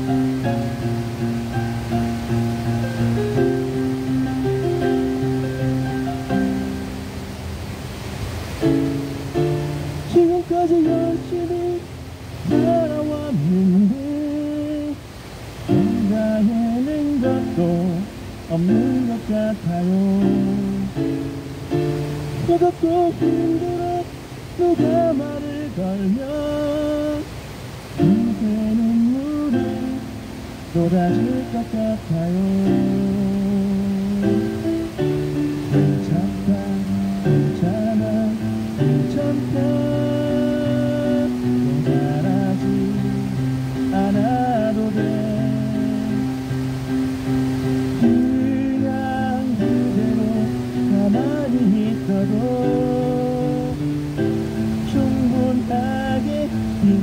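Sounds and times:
electronic keyboard accompaniment: 0.0 - 7.6, 8.5 - 14.9, 15.6 - 27.2, 27.9 - 57.0
man singing into a microphone: 10.0 - 15.0, 15.7 - 21.2, 22.4 - 27.4, 28.0 - 34.7, 35.7 - 46.5, 48.0 - 57.0.

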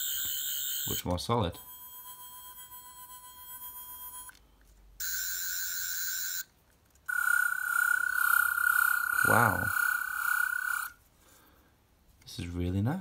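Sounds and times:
steady high electronic tone: 7.1 - 11.0
warbling electronic tone: 7.1 - 11.0.

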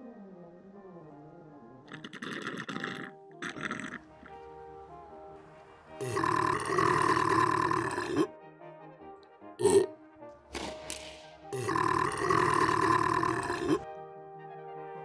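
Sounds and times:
quiet background music: 0.0 - 15.0
person's guttural vocal sound: 1.9 - 4.4, 6.0 - 8.3, 9.6 - 9.9, 11.5 - 13.8.

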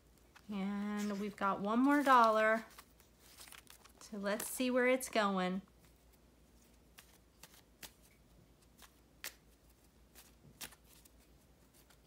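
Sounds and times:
playing cards being shuffled: 0.1 - 4.6, 5.8 - 12.0.

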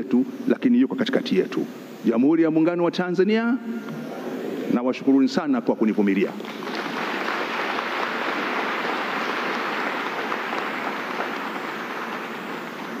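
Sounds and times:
audience applauding: 6.4 - 13.0.

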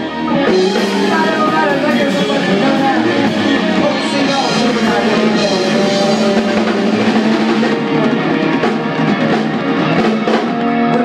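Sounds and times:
drum kit: 0.0 - 11.0
rock band playing: 0.0 - 11.0.

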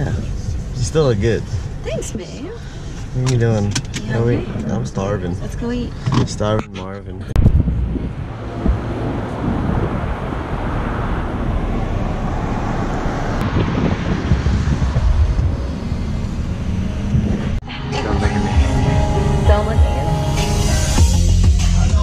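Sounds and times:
tyre and road noise: 0.0 - 22.0
wind buffeting microphone: 7.3 - 17.6.

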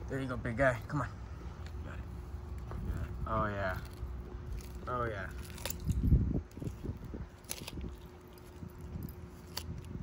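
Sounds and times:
tortoise crunching cucumber: 0.6 - 10.0
chewing crunches and clicks: 2.4 - 10.0.

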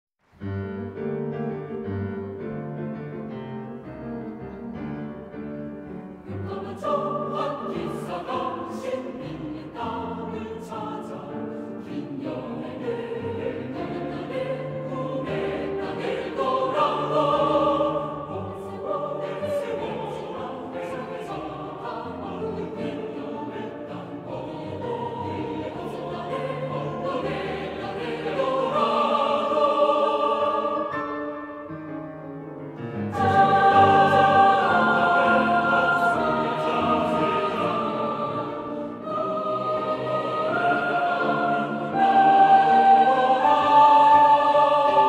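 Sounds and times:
piano accompaniment: 0.4 - 45.0
choir singing: 4.7 - 31.9, 32.8 - 45.0.

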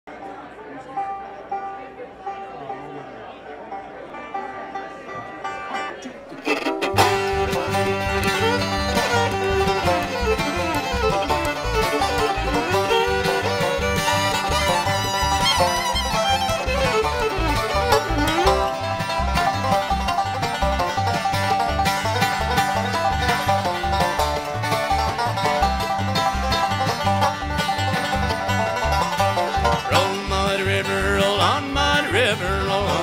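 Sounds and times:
banjo rolls: 0.1 - 33.0
bluegrass band playing: 0.1 - 33.0
fiddle: 0.1 - 33.0
upright bass: 6.4 - 33.0
voices: 29.7 - 33.0.

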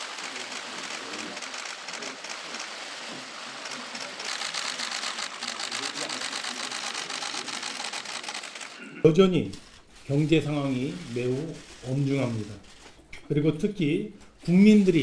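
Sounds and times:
murmur of voices: 0.0 - 9.0
camera shutters clicking: 0.2 - 2.7, 3.6 - 8.8.

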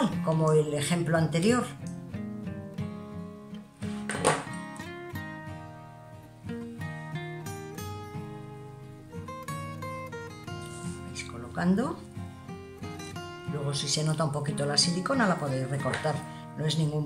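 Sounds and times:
guitar plucking slow melody: 0.0 - 17.0.

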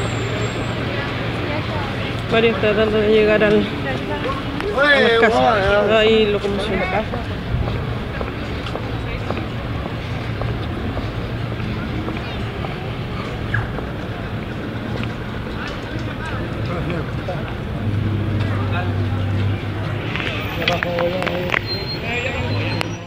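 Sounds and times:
babble of distant voices: 0.0 - 23.0
vehicle engines humming: 0.0 - 23.0.

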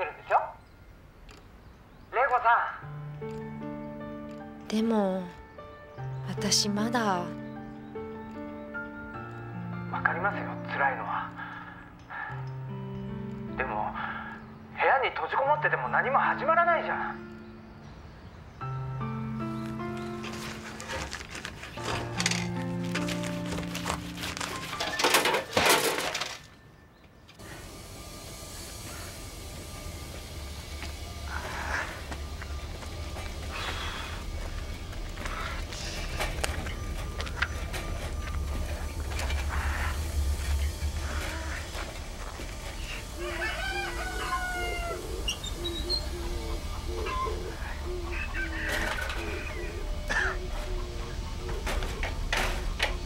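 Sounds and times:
shattering crashes: 24.7 - 26.5
rooster crowing: 42.8 - 50.5.

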